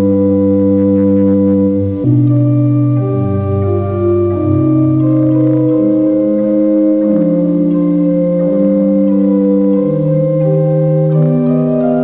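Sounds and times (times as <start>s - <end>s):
organ chords: 0.0s - 12.0s.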